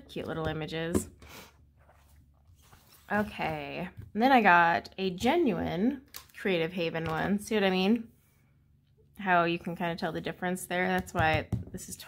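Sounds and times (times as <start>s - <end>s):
soft rustle of books on table: 1.4s - 4.2s.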